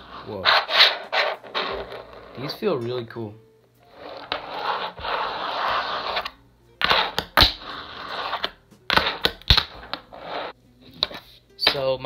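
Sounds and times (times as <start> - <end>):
fingerboard rolling on wood: 0.0 - 2.5, 3.9 - 11.2.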